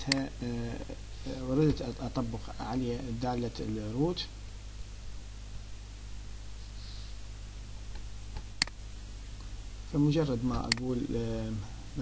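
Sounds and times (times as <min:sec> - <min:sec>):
low electrical hum: 0:00.0 - 0:12.0
computer click: 0:00.1 - 0:00.3, 0:10.5 - 0:10.9.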